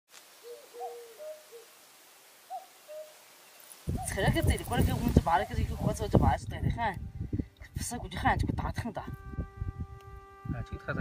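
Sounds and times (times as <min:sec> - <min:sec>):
bird calling: 0:00.4 - 0:01.7, 0:02.4 - 0:03.3
man speaking: 0:10.6 - 0:11.0.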